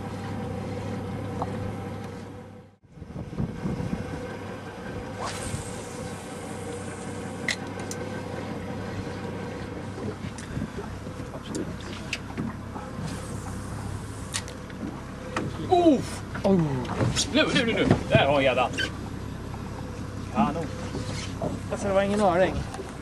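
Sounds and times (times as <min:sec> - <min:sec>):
boat motor humming: 0:00.0 - 0:23.0
water washing at hull: 0:00.0 - 0:23.0.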